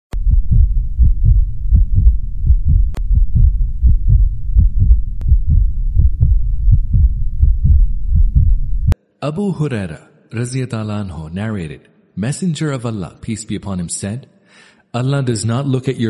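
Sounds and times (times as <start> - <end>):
deep low thumps: 0.1 - 9.0.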